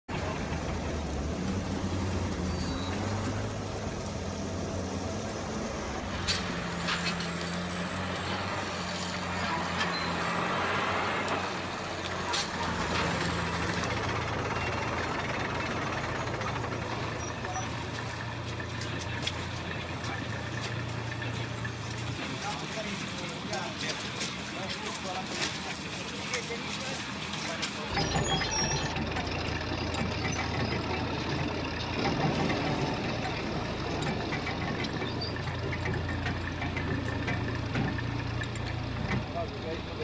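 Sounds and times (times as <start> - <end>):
engine droning: 0.0 - 40.0
rough noisy background: 0.1 - 40.0.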